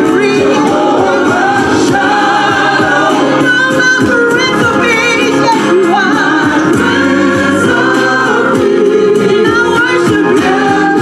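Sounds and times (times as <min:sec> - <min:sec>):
gospel singers amplified: 0:00.0 - 0:11.0
musical accompaniment: 0:00.0 - 0:11.0.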